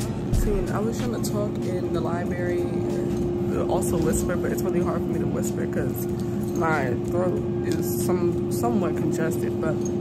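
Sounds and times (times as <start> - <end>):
steady hum: 0.0 - 10.0
woman speaking with congested voice: 0.3 - 9.9.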